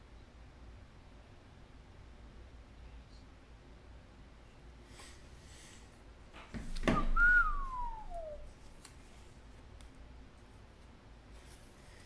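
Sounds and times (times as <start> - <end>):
person whistling sliding note: 6.9 - 8.5
short rising sound: 7.2 - 8.4.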